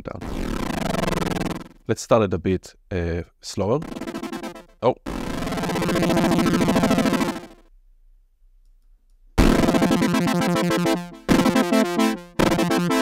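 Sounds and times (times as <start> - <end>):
synth chord with wobbling filter: 0.2 - 1.7, 3.8 - 7.6, 9.4 - 13.0.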